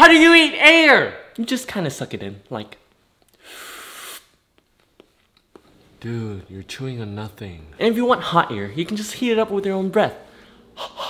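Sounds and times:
person inhaling sharply: 0:03.3 - 0:04.4, 0:10.3 - 0:11.0.

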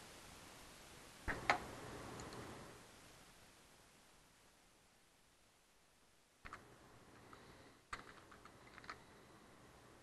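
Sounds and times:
computer keyboard keystrokes: 0:07.9 - 0:09.0.

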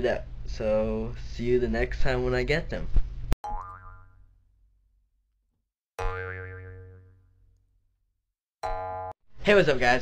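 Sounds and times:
cartoon boing sound effect: 0:03.4 - 0:04.2, 0:06.0 - 0:07.2, 0:08.6 - 0:09.1.

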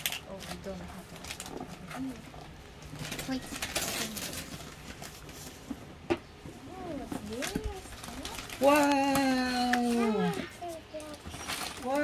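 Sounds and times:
paper rustling and crinkling: 0:00.0 - 0:05.8, 0:06.9 - 0:12.0.

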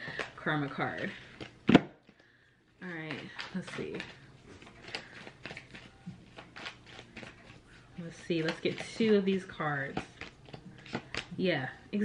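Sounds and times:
cards being shuffled: 0:03.0 - 0:11.4.

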